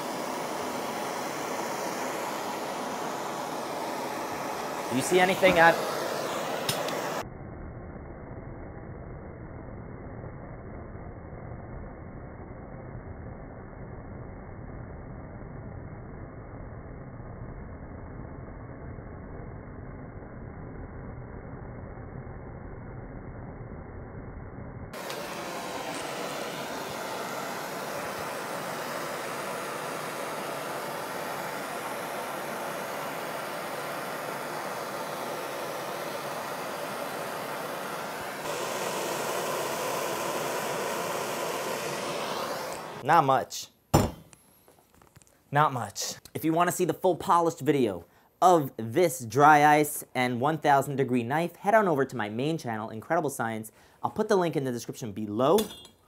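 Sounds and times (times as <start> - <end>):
blowtorch flame roaring: 0.0 - 43.1.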